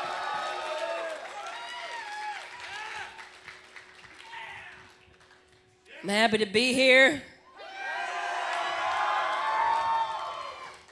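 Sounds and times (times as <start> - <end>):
audience cheering and whooping: 0.0 - 3.3, 7.6 - 10.9.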